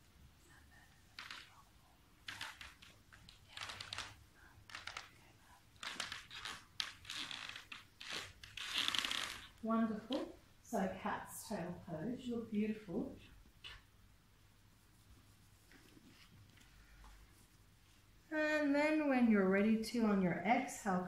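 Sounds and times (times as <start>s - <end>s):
rustling on yoga mats: 0.0s - 10.4s, 14.7s - 18.2s
person speaking: 9.6s - 13.3s.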